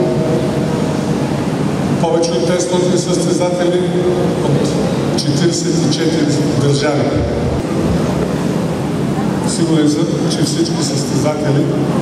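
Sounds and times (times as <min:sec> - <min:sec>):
large hall background rumble: 0:00.0 - 0:12.0.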